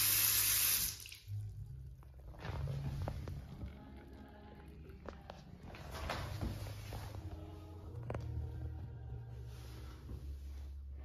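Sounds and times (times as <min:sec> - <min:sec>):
faucet running into sink: 0:00.0 - 0:01.4.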